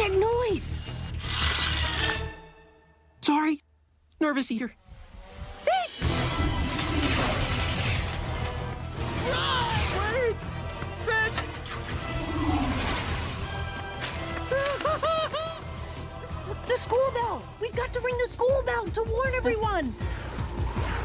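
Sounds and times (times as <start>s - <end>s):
dramatic chase music: 5.0s - 21.0s
crashing effects: 6.0s - 8.8s.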